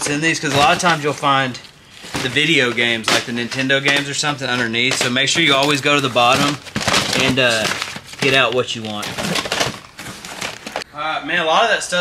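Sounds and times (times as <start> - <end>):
plastic cases clacking and scraping: 0.0 - 10.8.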